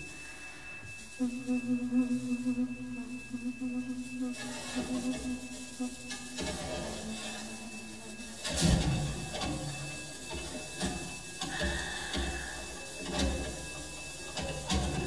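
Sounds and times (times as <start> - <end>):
brief high tone: 0.0 - 8.6
low drone tone: 0.0 - 15.0.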